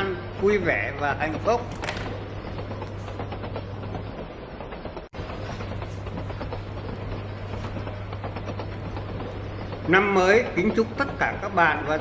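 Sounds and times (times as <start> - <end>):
train rumbling on rails: 0.0 - 12.0.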